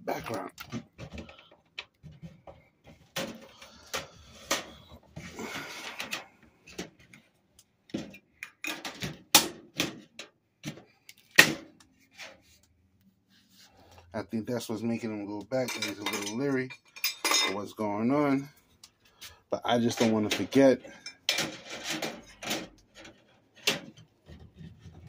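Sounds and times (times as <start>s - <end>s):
clamps clicking and knocking: 19.8s - 24.8s.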